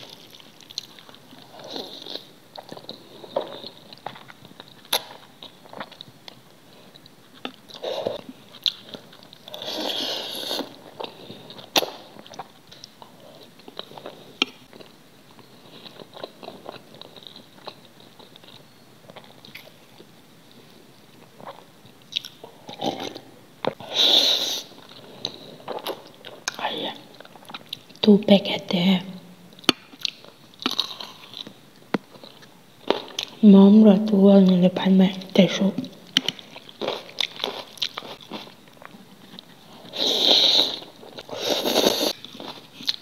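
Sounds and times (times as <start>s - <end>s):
chewing food: 0.0s - 23.8s, 24.8s - 28.1s, 29.6s - 33.4s, 36.0s - 43.0s.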